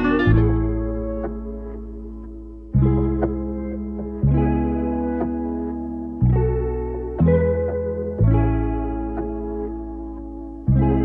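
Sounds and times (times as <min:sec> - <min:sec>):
deep bass note: 0:00.0 - 0:01.5
chorus guitar chords: 0:00.0 - 0:11.0.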